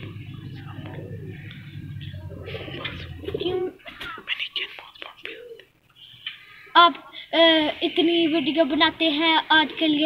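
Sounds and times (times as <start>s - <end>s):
pigeons cooing: 0.0s - 4.1s.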